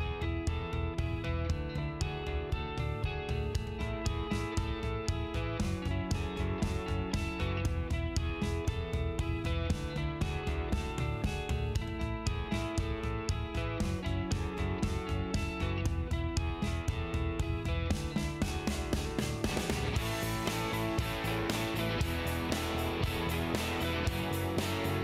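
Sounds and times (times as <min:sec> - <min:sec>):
guitar music with steady beat: 0:00.0 - 0:25.0.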